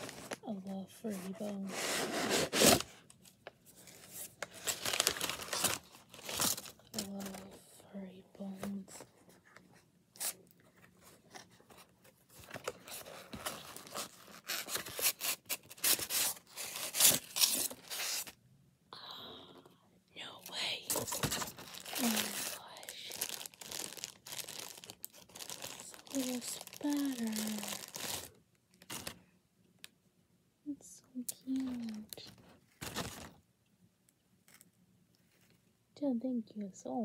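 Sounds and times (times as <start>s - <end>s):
packaging tearing and crinkling: 4.0s - 7.4s, 12.5s - 18.4s, 20.9s - 29.2s, 31.5s - 33.4s.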